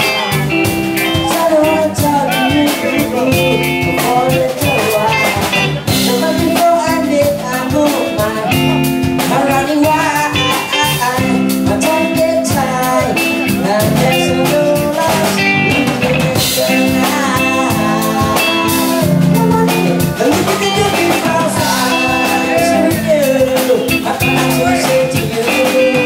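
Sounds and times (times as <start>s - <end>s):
reggae band playing: 0.0s - 26.0s
gliding melody line: 13.4s - 25.3s.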